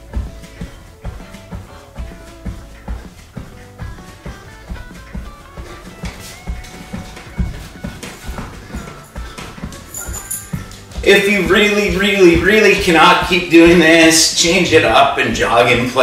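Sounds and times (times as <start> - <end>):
background music with a beat: 0.0 - 15.6.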